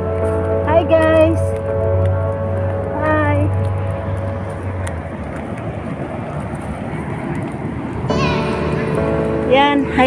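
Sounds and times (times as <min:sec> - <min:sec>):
highway traffic roar: 0:00.0 - 0:10.0.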